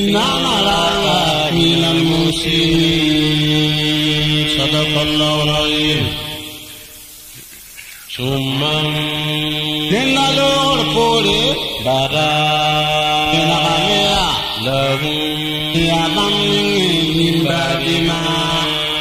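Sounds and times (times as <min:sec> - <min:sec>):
man chanting recitation: 0:00.0 - 0:07.0, 0:07.8 - 0:19.0.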